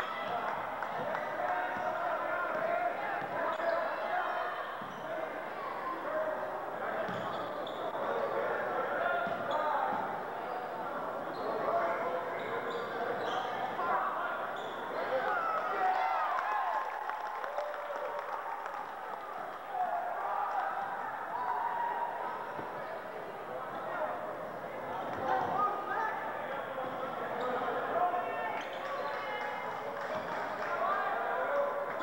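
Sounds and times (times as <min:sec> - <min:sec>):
crowd chatter: 0:00.0 - 0:32.0
sneakers squeaking: 0:01.6 - 0:05.2, 0:07.0 - 0:08.0, 0:09.2 - 0:15.0, 0:26.8 - 0:29.4.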